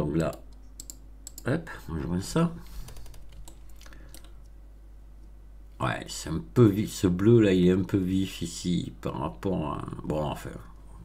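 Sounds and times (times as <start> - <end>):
steady low hum: 0.0 - 11.0
computer keyboard keys clicking: 0.2 - 1.5, 2.9 - 4.4.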